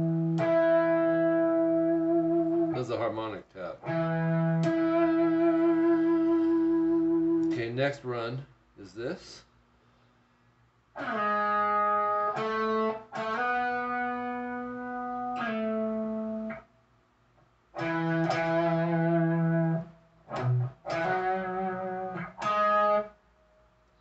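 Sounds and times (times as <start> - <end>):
electric guitar chords: 0.0 - 2.8, 3.8 - 7.5, 11.0 - 16.6, 17.8 - 23.2.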